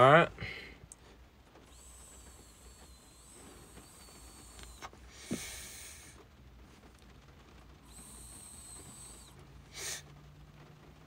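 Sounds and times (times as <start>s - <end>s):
soft hiss: 0.0s - 11.0s
vape draw whistling: 1.7s - 6.2s, 7.8s - 10.1s.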